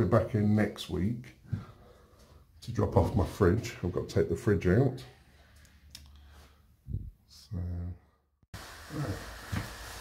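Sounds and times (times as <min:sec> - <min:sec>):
man speaking: 0:00.0 - 0:01.4, 0:02.6 - 0:05.2, 0:07.3 - 0:08.0
steady hiss: 0:08.6 - 0:10.0.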